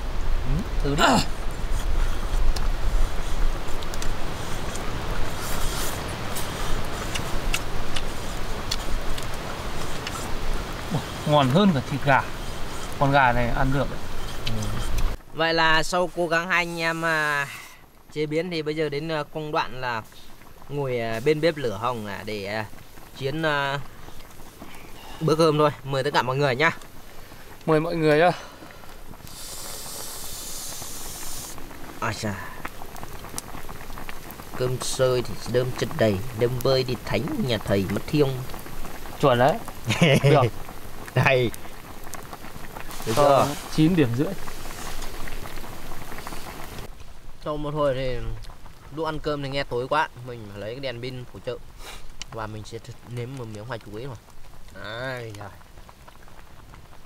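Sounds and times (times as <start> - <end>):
campfire crackling: 0.0 - 57.0
fire popping sharply: 0.0 - 57.0
steam hissing from boiling pot: 0.0 - 57.0.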